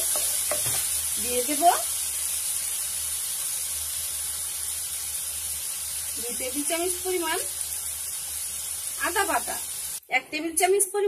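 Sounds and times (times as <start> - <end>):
oil sizzling in a wok: 0.0 - 11.0.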